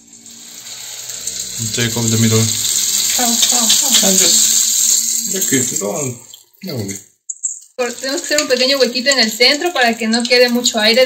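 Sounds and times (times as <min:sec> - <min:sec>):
dough deep-frying in oil: 0:00.0 - 0:11.0.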